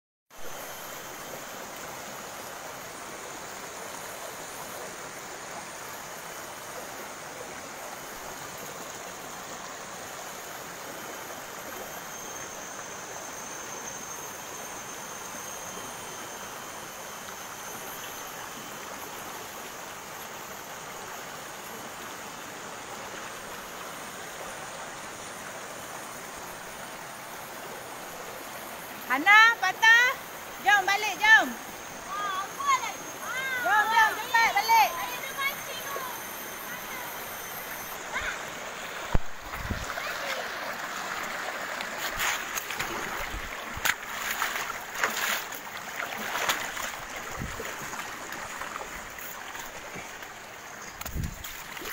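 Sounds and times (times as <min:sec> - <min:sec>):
river flowing over rocks: 0:36.3 - 0:51.9.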